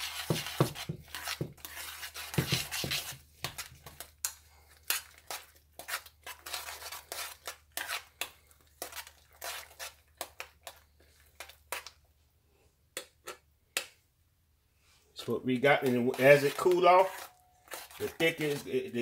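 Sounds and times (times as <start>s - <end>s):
spoon scraping metal saucepan: 0.0s - 11.9s, 15.6s - 19.0s.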